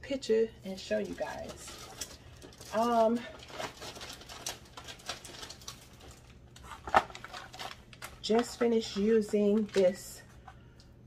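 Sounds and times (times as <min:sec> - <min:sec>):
plastic packaging rustling: 0:00.7 - 0:10.7.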